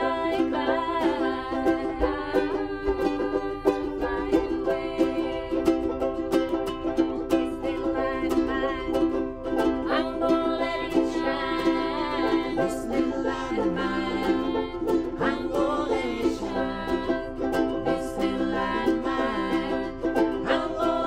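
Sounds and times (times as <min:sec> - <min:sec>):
ukuleles strummed: 0:00.0 - 0:21.0
voices singing: 0:00.0 - 0:21.0.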